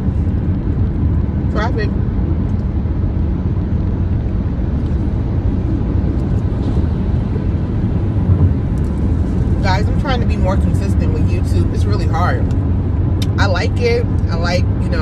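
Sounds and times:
car cabin road and engine rumble: 0.0s - 15.0s.

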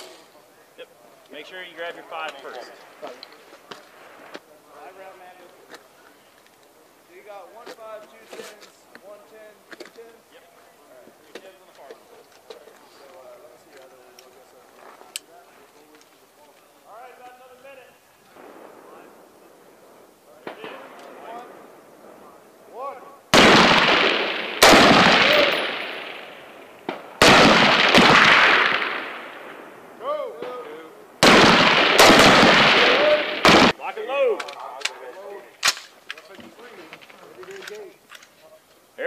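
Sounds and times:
faint voices: 0.0s - 23.3s, 32.6s - 39.0s
rifle shots with echo: 20.3s - 22.4s, 23.3s - 33.8s.

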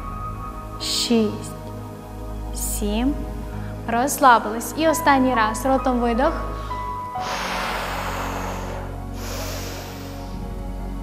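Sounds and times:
background music: 0.0s - 11.0s
woman exhaling with hiss: 6.5s - 10.5s
sharp inhale through nose: 6.5s - 10.6s.

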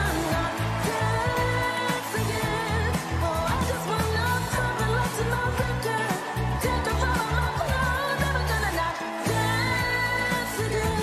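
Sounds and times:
pop song lead vocal: 0.0s - 11.0s.

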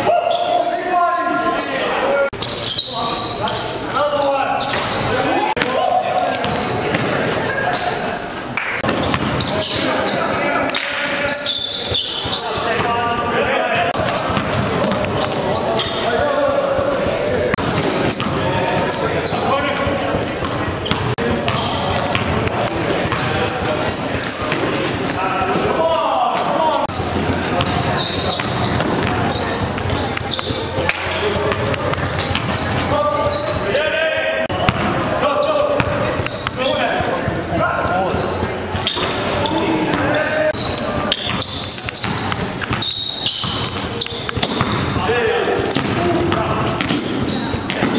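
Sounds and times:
players calling and chatting: 0.0s - 47.9s
basketball bouncing on gym court: 6.4s - 7.2s, 8.8s - 9.8s, 13.9s - 15.9s, 17.6s - 25.2s, 26.4s - 33.7s, 34.5s - 35.1s, 39.9s - 47.9s.

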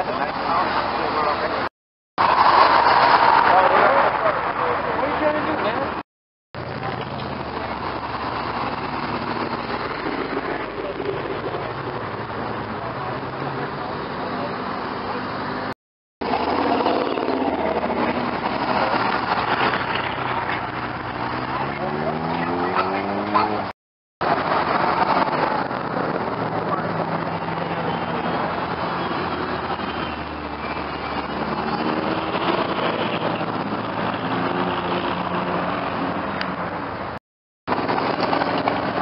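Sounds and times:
car engines in passing traffic: 0.0s - 6.0s, 6.6s - 39.0s.

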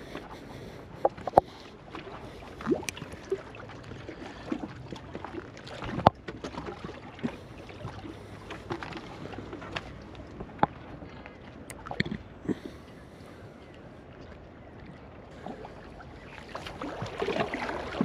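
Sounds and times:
waves lapping against rock: 0.0s - 13.4s, 15.3s - 18.0s.

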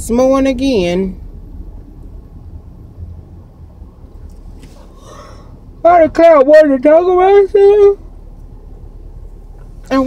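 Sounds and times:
road and engine rumble in car: 0.0s - 10.0s
faint short hiss: 4.3s - 5.5s.

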